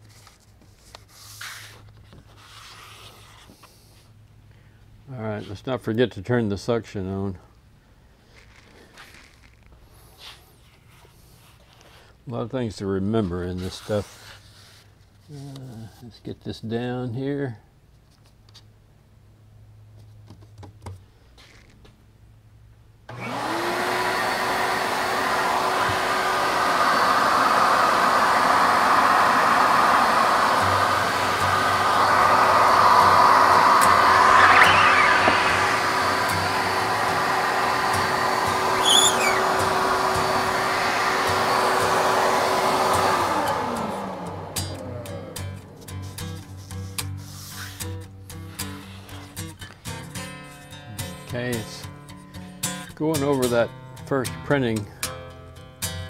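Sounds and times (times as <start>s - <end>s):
suction motor running: 23.1s - 45.6s
rush of air: 28.4s - 38.8s.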